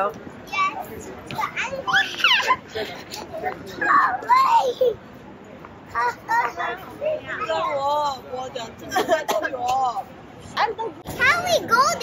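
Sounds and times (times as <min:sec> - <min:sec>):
child crying out and chattering: 0:01.4 - 0:05.0.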